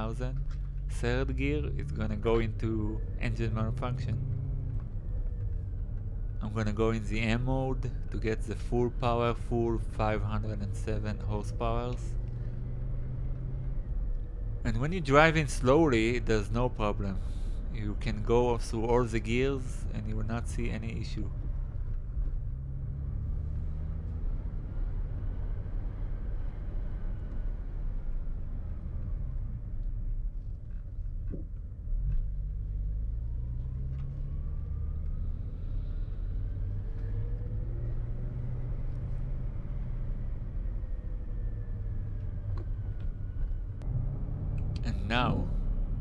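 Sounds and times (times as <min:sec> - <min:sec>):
car engine low rumble: 0:00.0 - 0:46.0.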